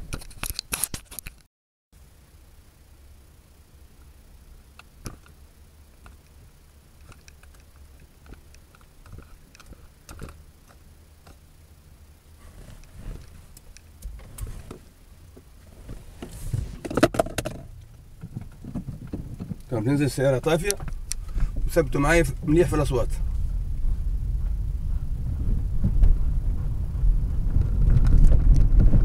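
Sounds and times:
tyre and road rumble: 0:06.9 - 0:29.0
car body knocks and clicks: 0:15.8 - 0:19.7.

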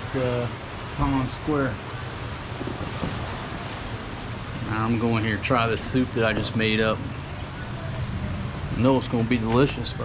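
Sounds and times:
low steady hum: 0:00.0 - 0:10.0
steady outdoor hiss: 0:00.0 - 0:10.0.

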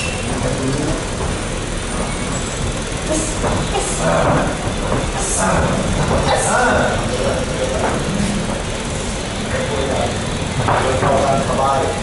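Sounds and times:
steady rumbling noise: 0:00.0 - 0:12.0.

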